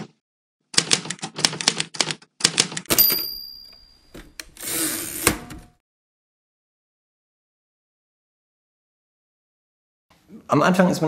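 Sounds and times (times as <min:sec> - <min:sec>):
typewriter key strikes: 0:00.8 - 0:04.3
typewriter bell ringing: 0:02.9 - 0:04.3
typewriter carriage rasping slide: 0:04.4 - 0:05.7.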